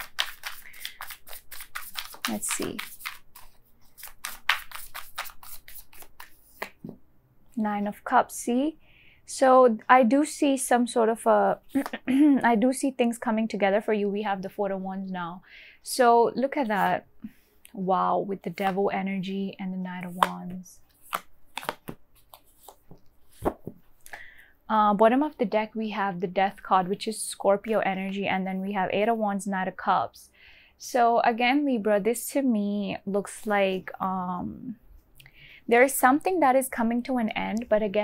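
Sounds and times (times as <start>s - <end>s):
cards being shuffled: 0.0s - 7.0s, 11.7s - 12.0s, 20.0s - 23.9s
cards snapping and tapping on table: 21.0s - 22.8s.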